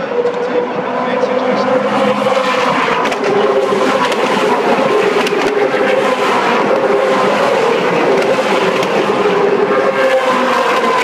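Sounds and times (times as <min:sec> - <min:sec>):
racing car engines: 0:00.0 - 0:11.0.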